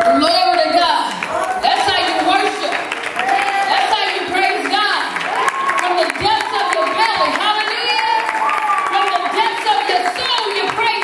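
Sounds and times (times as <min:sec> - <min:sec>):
audience noise: 0:00.0 - 0:11.0.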